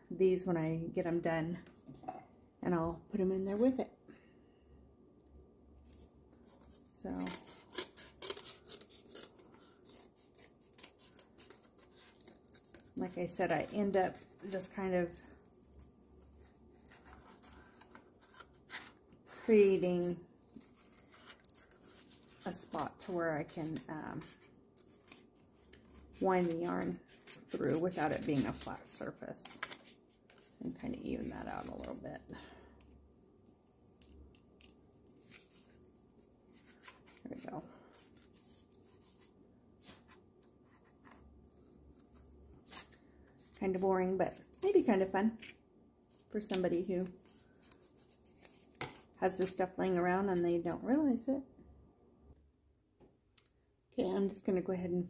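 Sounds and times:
scissors cutting cardboard: 6.5 - 32.0.

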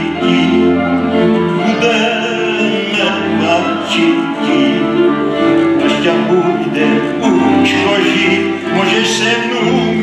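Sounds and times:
fiddles playing folk music: 0.0 - 10.0.

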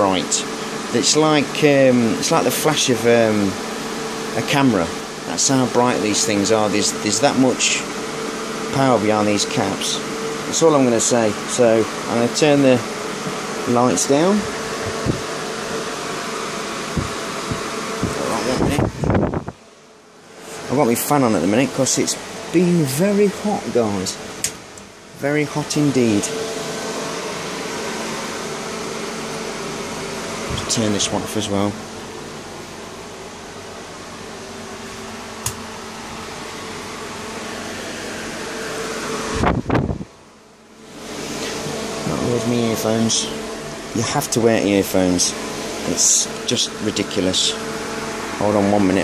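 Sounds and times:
electric fan running: 0.0 - 49.0
faint motor hum: 0.0 - 49.0.

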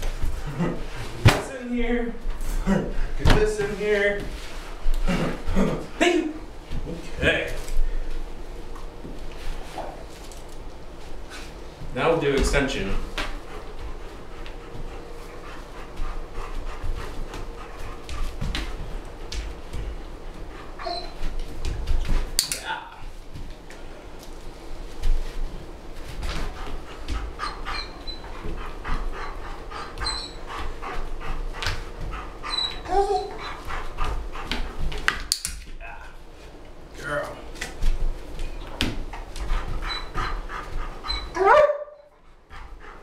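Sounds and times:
dog panting: 11.3 - 22.2, 25.0 - 35.1, 38.4 - 43.0
dog whining: 20.7 - 21.3, 27.4 - 28.4, 29.9 - 30.5, 32.4 - 33.7, 39.8 - 40.4, 41.0 - 42.1.

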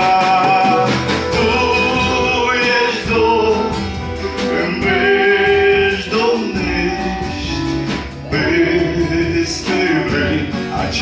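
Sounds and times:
acoustic guitar strumming: 0.0 - 11.0
man singing: 0.0 - 11.0.

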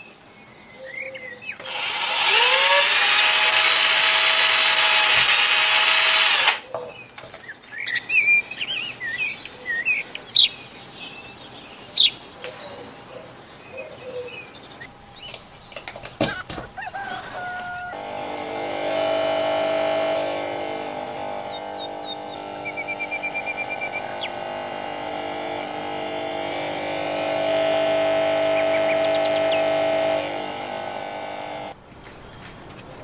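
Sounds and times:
electric air pump humming: 1.6 - 6.7, 14.9 - 31.8.

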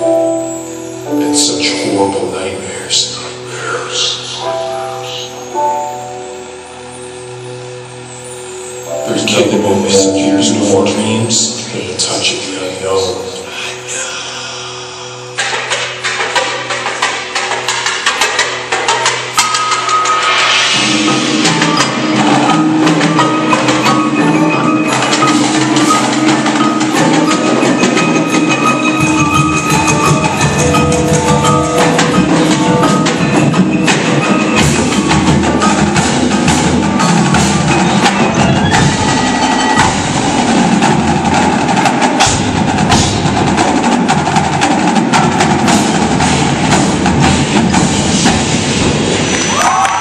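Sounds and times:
held chord: 0.0 - 14.2
sharp percussion hits: 0.0 - 50.0
marching drums: 15.4 - 50.0.

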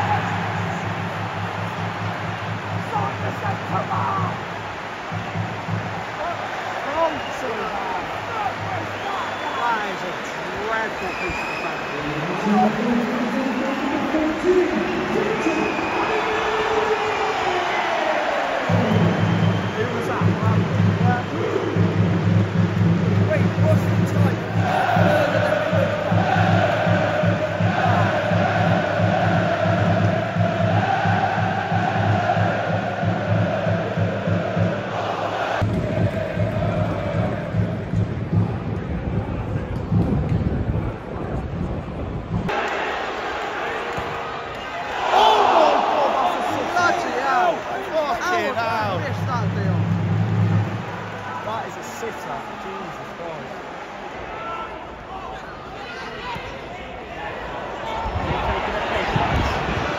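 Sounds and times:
stadium crowd singing and chanting: 8.2 - 9.6, 11.1 - 20.6, 23.5 - 39.6, 42.5 - 51.2.

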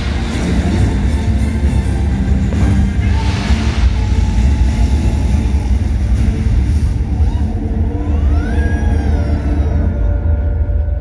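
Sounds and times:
deep fireworks rumble: 0.0 - 9.0.

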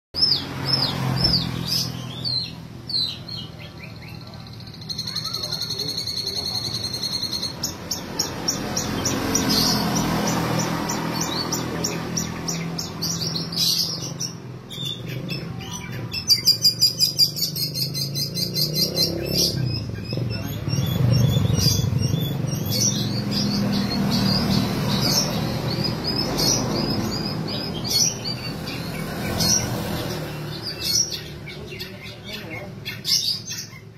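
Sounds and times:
bird singing varied song: 0.1 - 33.9.

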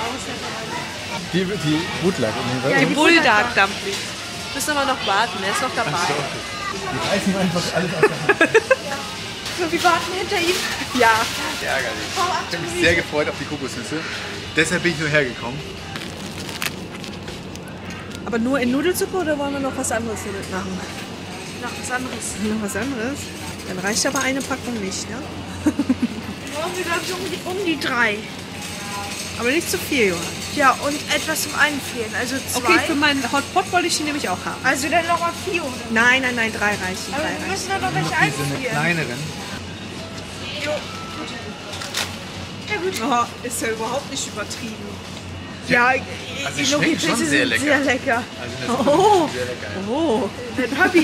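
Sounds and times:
refrigerated cases humming: 0.0 - 51.0
plastic packaging crinkling: 15.9 - 18.2.

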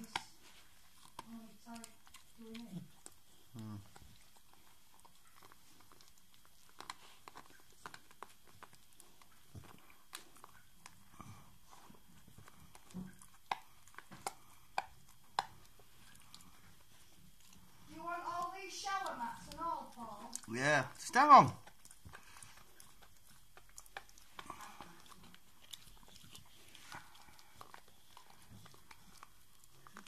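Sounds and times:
dog chewing on a toy: 0.0 - 30.0.

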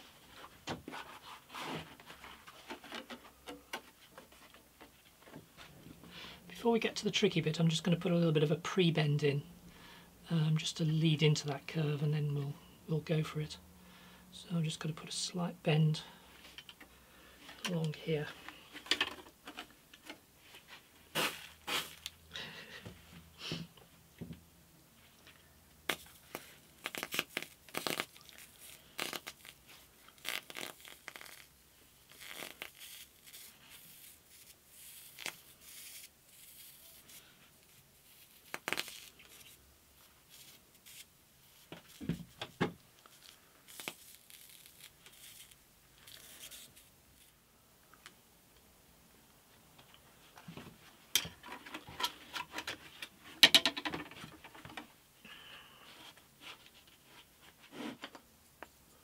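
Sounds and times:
wood knocking and rattling: 51.3 - 54.8.

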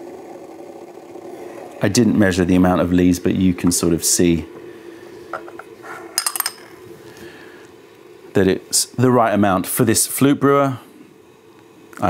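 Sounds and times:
glass lid clinking: 6.2 - 6.8.

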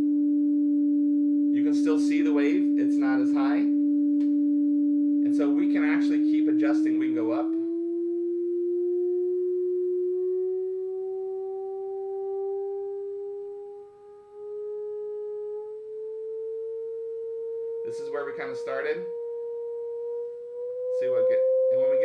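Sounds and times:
sine tone rising in pitch: 0.0 - 22.0.

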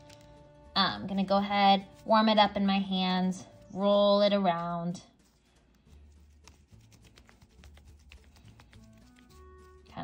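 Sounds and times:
faint background music: 0.0 - 10.0
hands kneading clay: 0.0 - 10.0.

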